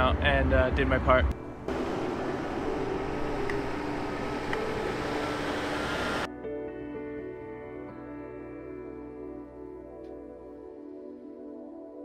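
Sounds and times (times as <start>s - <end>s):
fire engine engines running: 1.7s - 6.3s.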